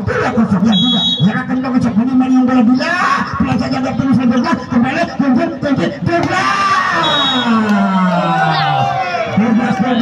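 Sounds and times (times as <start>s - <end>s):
man commentating: 0.0s - 8.0s
shrill whistle blast: 0.8s - 1.3s, 7.0s - 7.6s.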